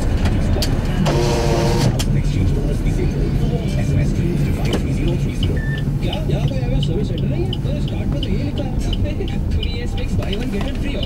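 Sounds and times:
engine and road rumble in car cabin: 0.0s - 11.0s
vehicle horn: 1.0s - 2.0s.

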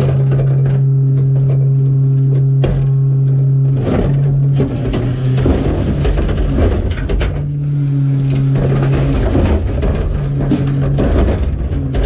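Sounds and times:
hydraulics hum: 0.0s - 12.0s
truck engine rumble: 0.0s - 12.0s
cart and trash thudding: 3.8s - 12.0s.

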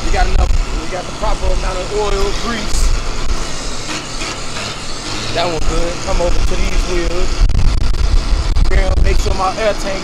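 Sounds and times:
vehicle rumble and hiss: 0.0s - 10.0s.

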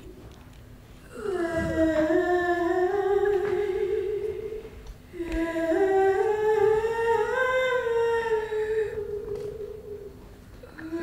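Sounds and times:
woman humming a slow tune: 1.0s - 11.0s.

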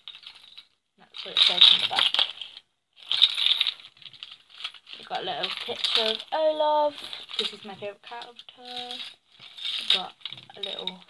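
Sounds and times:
trinkets and keyrings clinking: 0.0s - 11.0s.

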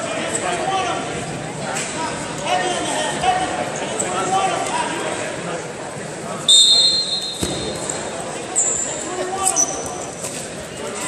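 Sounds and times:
voices of coaches and spectators: 0.0s - 11.0s
shrill whistle: 6.5s - 7.8s.

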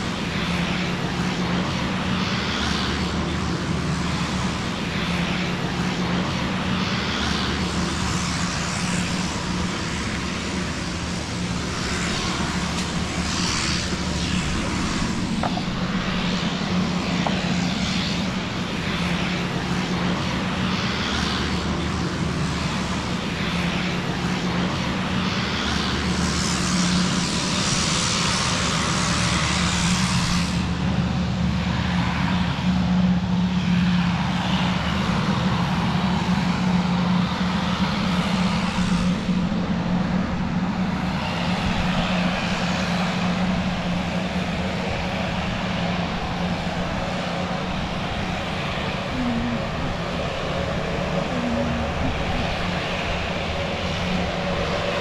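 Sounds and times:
airplane engines running: 0.0s - 55.0s.

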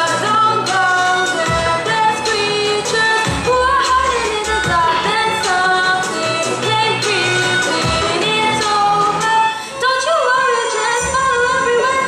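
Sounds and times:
girl singing: 0.0s - 12.0s.

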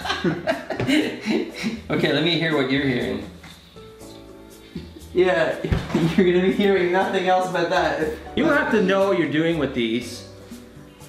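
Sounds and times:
man chuckling: 0.0s - 1.9s.

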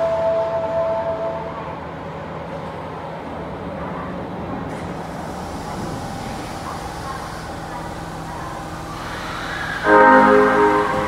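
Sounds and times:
subway train humming: 0.0s - 11.0s
steady tones: 8.8s - 11.0s.

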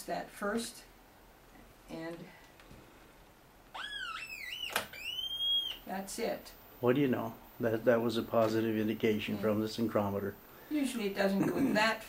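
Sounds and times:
whistling oscillator tone: 3.8s - 5.8s.

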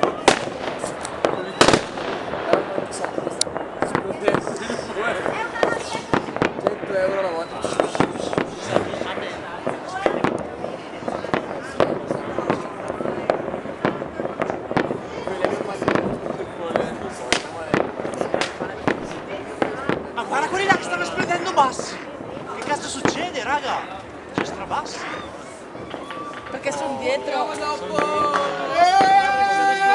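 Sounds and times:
fireworks and firecrackers banging: 0.0s - 29.9s.

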